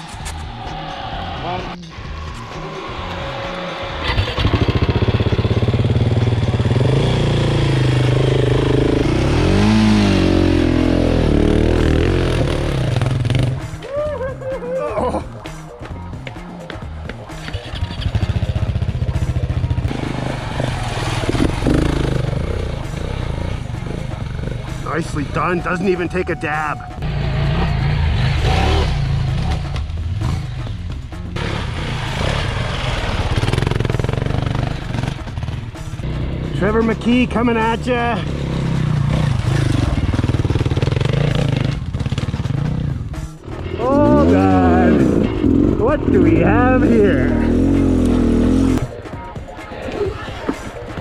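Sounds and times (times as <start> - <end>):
motorcycle engine revving: 2.7 - 13.8, 17.3 - 26.2, 26.9 - 48.9.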